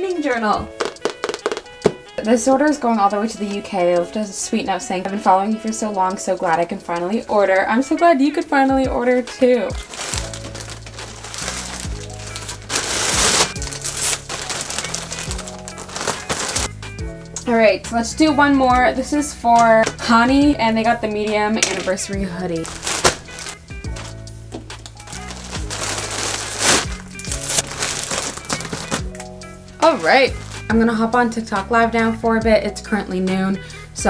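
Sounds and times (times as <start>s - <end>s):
plastic bag rustling: 0.7s - 2.1s, 9.7s - 16.7s, 21.6s - 29.2s, 29.8s - 30.7s
background music with bass line: 8.5s - 34.0s.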